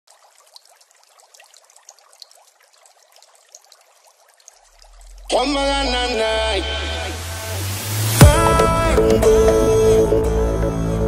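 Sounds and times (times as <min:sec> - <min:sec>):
water trickling and bubbling: 0:00.0 - 0:08.6.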